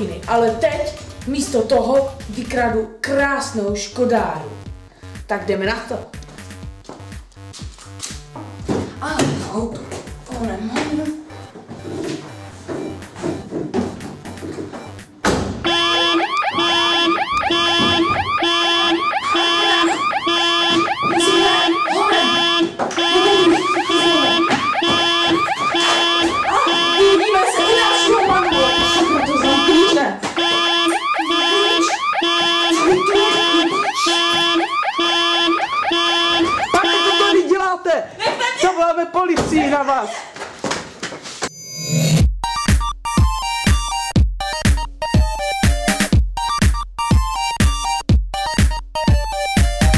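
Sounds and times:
car alarm pulsing: 14.2 - 37.5.

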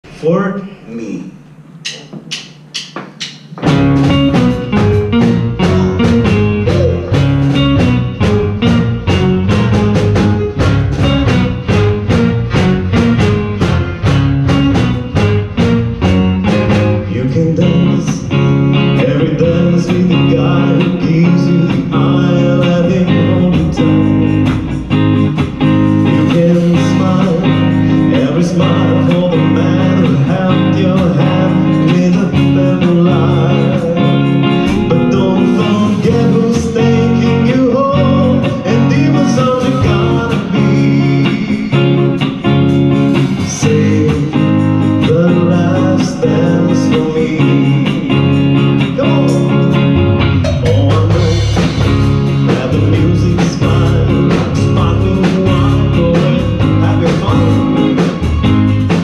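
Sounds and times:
drums: 0.0 - 59.0
keyboards: 0.1 - 59.0
bass guitar: 1.0 - 59.0
electric guitar: 3.4 - 59.0.

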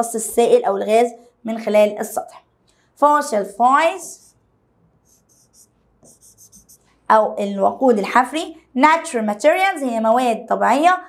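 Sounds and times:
stylus scratching on glass: 5.0 - 6.8.

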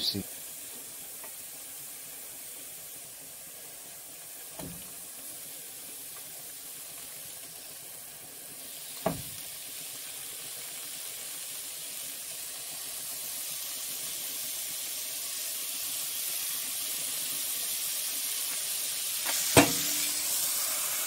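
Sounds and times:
meat sizzling in a frying pan: 0.0 - 21.0.

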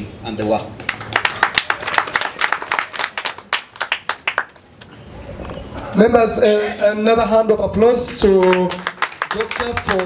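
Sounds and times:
audience clapping: 0.8 - 4.7, 7.7 - 10.0.

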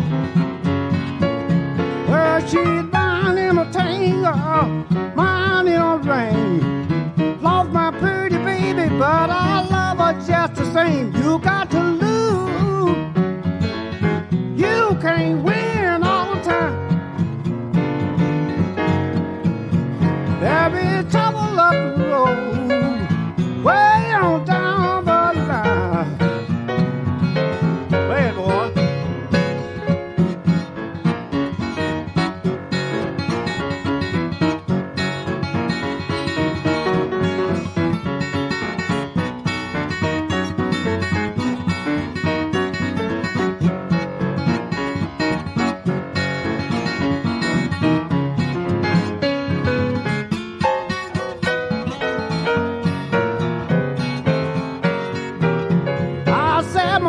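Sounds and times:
blues guitar playing: 0.0 - 57.0.

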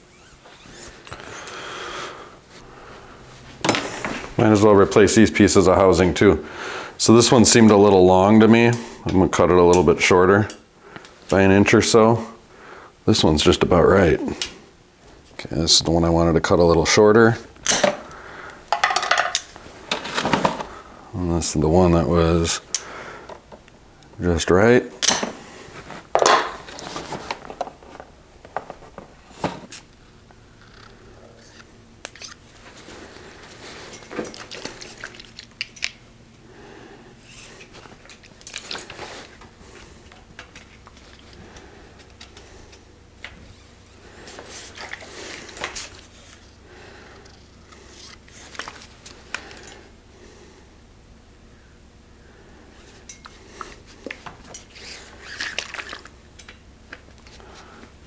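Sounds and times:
cables rustling: 25.4 - 30.0, 30.6 - 36.0, 37.2 - 46.6, 47.2 - 49.9.

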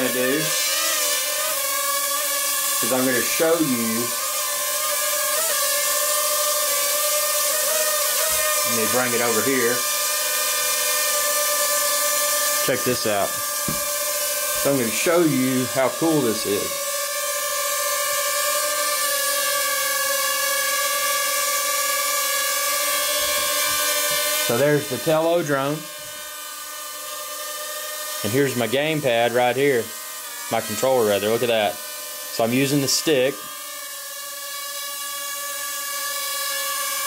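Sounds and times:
quadcopter propeller whine: 0.0 - 37.0.

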